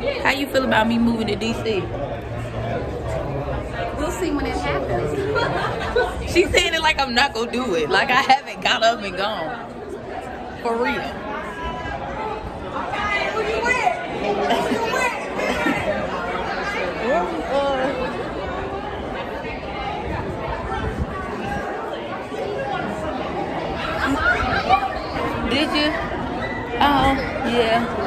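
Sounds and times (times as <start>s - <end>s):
indistinct chatter of people: 0.0s - 28.0s.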